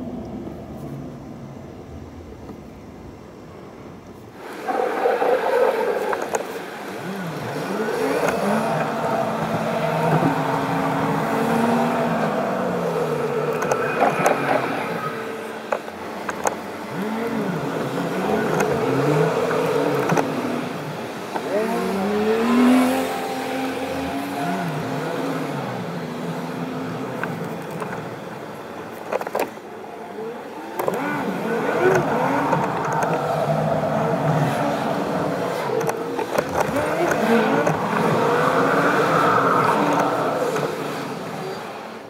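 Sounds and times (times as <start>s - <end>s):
car engine and road noise: 0.0s - 42.0s.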